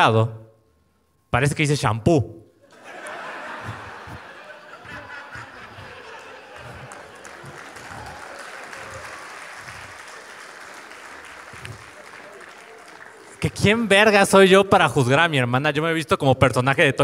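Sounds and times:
audience laughing: 2.6 - 13.4
audience clapping: 2.7 - 14.4.

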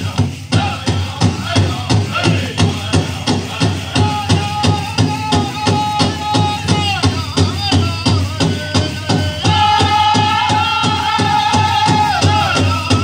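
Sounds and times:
big drum steady beat: 0.0 - 13.0
high singing voices: 0.0 - 13.0.

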